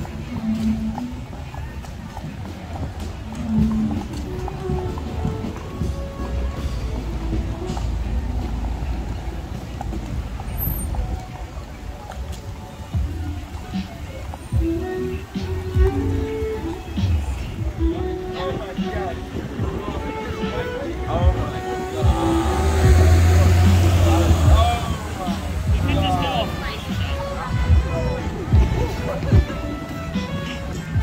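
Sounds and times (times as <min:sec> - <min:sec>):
low rumble of traffic: 0:00.0 - 0:31.0
music: 0:00.0 - 0:31.0
people's voices: 0:00.0 - 0:31.0.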